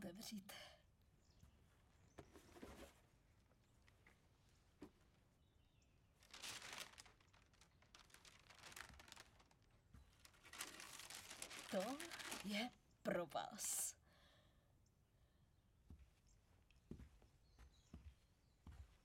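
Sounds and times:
box rustling and crinkling: 6.2 - 12.8.

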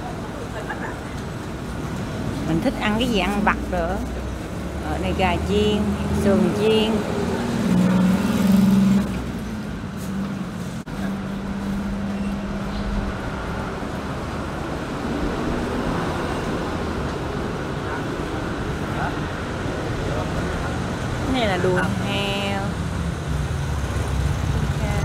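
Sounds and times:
traffic hum: 0.0 - 25.0.

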